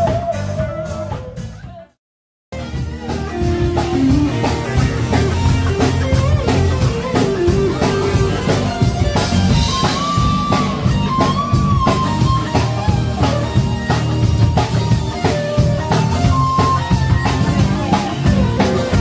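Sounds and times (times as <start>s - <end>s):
bass guitar: 0.0s - 19.0s
drum kit steady beat: 0.0s - 19.0s
electric guitar lead line: 2.6s - 19.0s.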